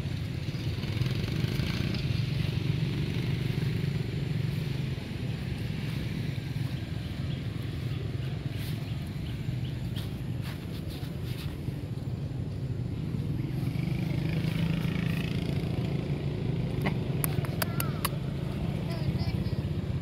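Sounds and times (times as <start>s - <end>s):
sharp clicks: 17.2s - 18.2s.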